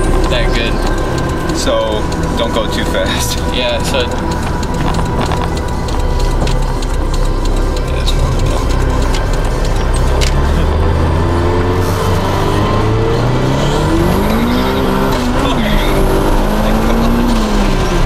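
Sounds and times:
car engine accelerating hard: 0.0 - 18.0.

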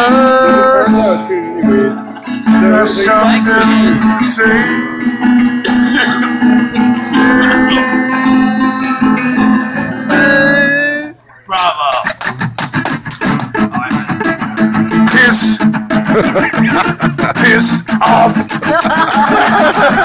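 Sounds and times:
long held voice-like notes: 0.0 - 11.2
acoustic guitar strumming: 0.0 - 20.0.

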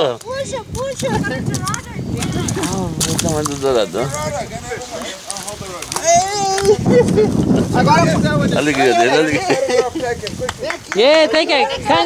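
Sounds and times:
excited voices calling out: 3.9 - 12.0.

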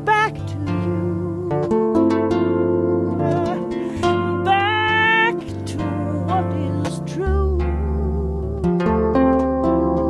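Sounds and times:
electric harp playing blues: 0.0 - 10.0.

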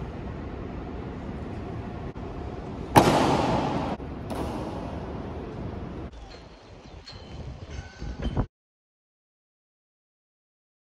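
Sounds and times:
echoing hall room noise: 0.0 - 8.0
loud bang with long echo: 2.9 - 5.2.

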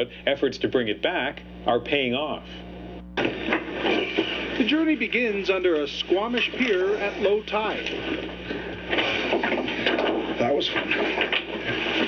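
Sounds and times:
rustling and scraping of people climbing: 6.2 - 12.0.

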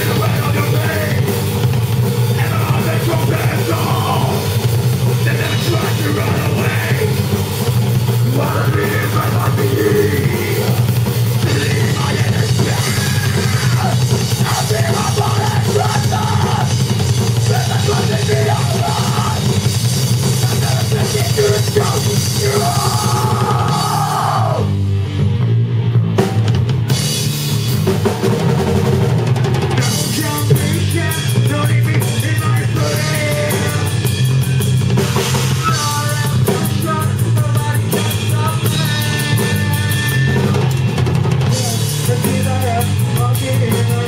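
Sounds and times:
rock band playing live: 0.0 - 44.0.

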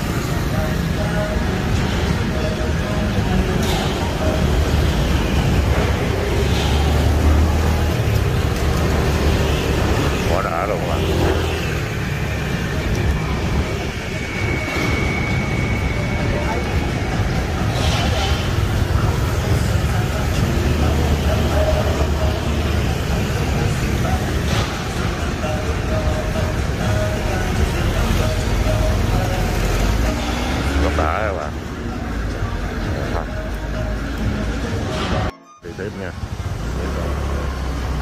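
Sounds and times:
background voices: 0.0 - 38.0
city traffic rumble: 0.0 - 38.0.

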